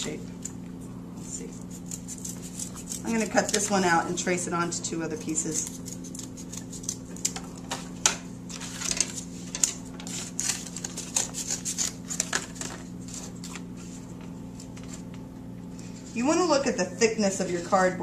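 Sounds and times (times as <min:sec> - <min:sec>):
scissors cutting cardboard: 0:01.6 - 0:03.8, 0:05.4 - 0:07.4, 0:10.0 - 0:12.4.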